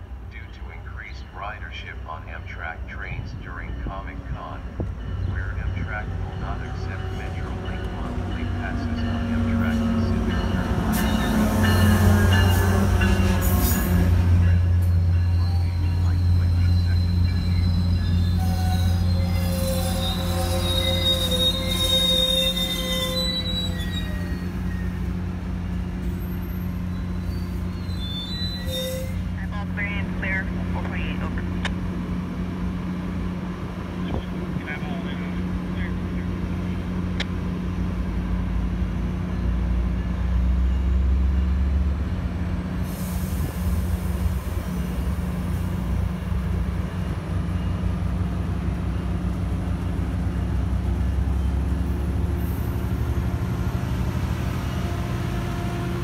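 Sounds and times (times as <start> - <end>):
diesel locomotive humming: 0.0 - 56.0
train brakes squealing: 6.6 - 25.2, 26.0 - 29.3.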